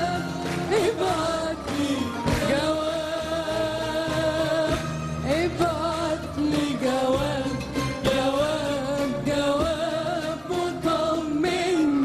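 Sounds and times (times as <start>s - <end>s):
band accompaniment: 0.0s - 12.0s
woman singing: 0.0s - 12.0s.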